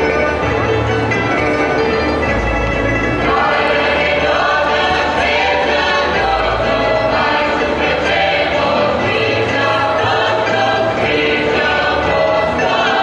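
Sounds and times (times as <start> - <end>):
choir singing folk song: 2.9 - 13.0.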